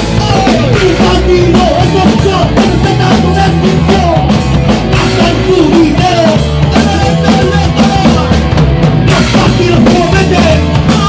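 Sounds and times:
punk band playing loudly: 0:00.0 - 0:11.0.

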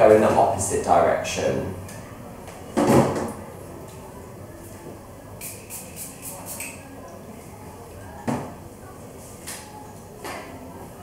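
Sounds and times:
spray bottle spritzing: 0:05.4 - 0:06.8.

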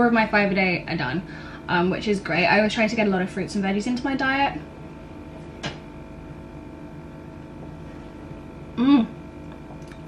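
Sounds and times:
steady background hum: 0:00.0 - 0:10.0.

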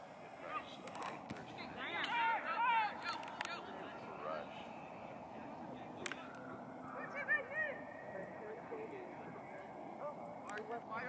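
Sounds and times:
outdoor background noise: 0:00.0 - 0:11.0
voices calling out: 0:00.0 - 0:11.0.

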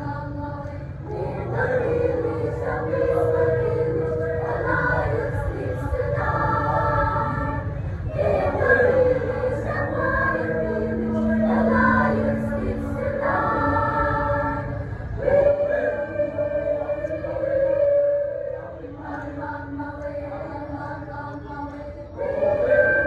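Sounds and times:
choir singing in harmony: 0:00.0 - 0:23.0
low sustained note: 0:01.1 - 0:21.5.

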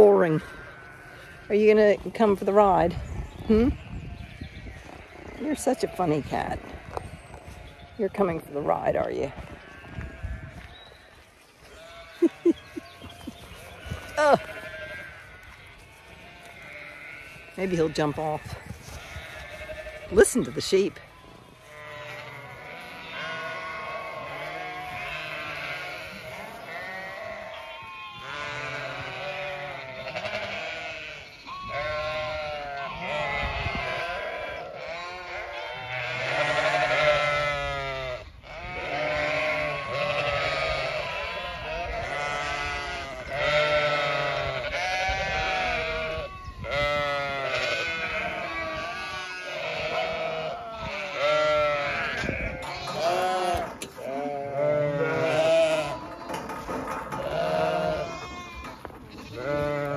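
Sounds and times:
sheep bleating: 0:00.0 - 0:02.9, 0:03.5 - 0:10.7, 0:11.6 - 0:59.9.

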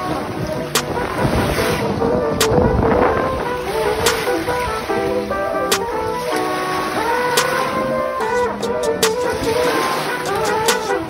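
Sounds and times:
background music with held notes: 0:00.0 - 0:11.0
waves washing in: 0:00.0 - 0:11.0
wind rumbling on microphone: 0:00.0 - 0:11.0.

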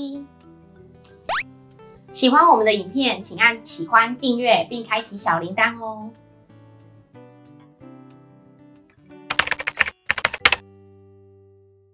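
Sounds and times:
keyboard key clicks: 0:09.3 - 0:10.6.

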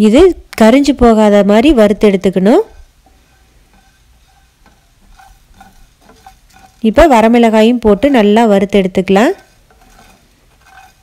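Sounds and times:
spatula scraping in pan: 0:01.8 - 0:11.0.

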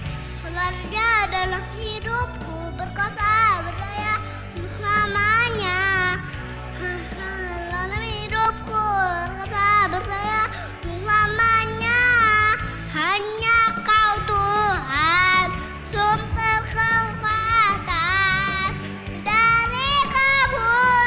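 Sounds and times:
backing music track: 0:00.0 - 0:21.0
boy singing into a microphone: 0:00.4 - 0:21.0.

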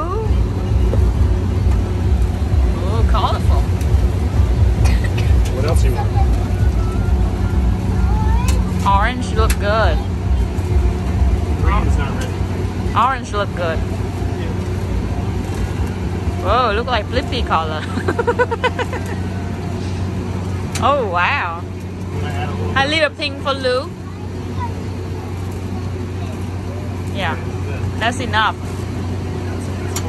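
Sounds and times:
people's voices: 0:00.0 - 0:20.2, 0:20.8 - 0:30.0
machinery humming and rumbling: 0:00.0 - 0:30.0.

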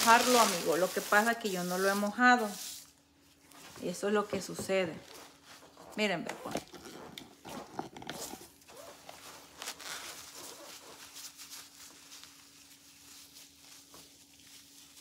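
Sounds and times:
crunching and rustling coir: 0:00.0 - 0:02.8, 0:07.6 - 0:15.0.

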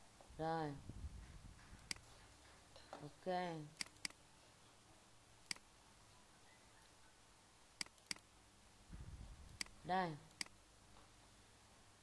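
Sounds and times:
computer mouse click: 0:03.8 - 0:04.2, 0:07.8 - 0:08.3, 0:09.5 - 0:10.6.

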